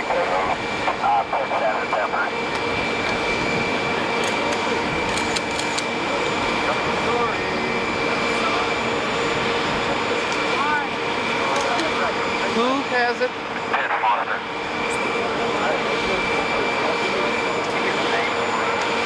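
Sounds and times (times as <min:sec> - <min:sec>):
people talking: 0:00.0 - 0:02.3, 0:10.6 - 0:14.4, 0:15.0 - 0:18.8
jet engines whining: 0:00.0 - 0:19.0.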